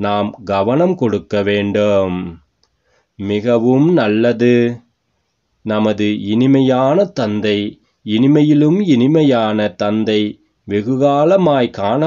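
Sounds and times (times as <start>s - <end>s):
man reading aloud: 0.0s - 2.5s, 3.1s - 5.0s, 5.6s - 12.0s
faint click: 2.5s - 2.8s.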